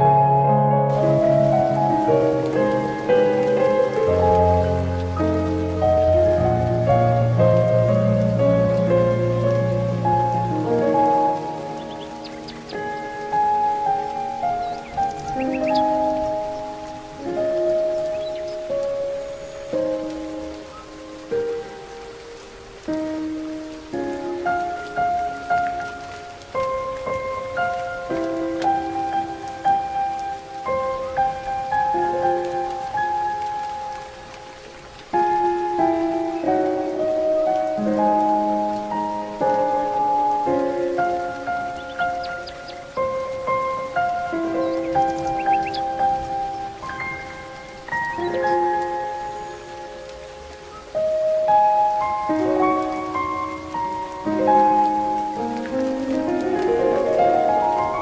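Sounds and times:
gentle solo piano: 0.0s - 58.0s
nature ambience: 0.0s - 58.0s.

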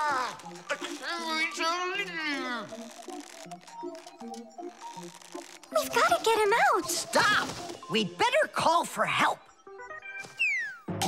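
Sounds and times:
light background music: 0.0s - 11.0s.

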